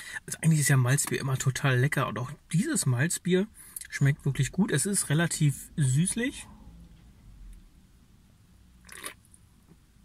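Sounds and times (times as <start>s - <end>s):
low steady hum: 0.0s - 10.0s
person sipping from a can: 8.8s - 9.2s.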